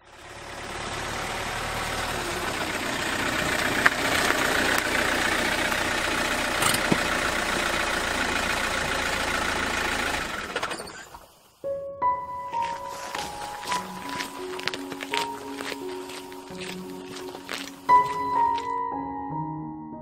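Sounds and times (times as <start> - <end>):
car engine idling: 0.0 - 11.6, 12.4 - 18.8.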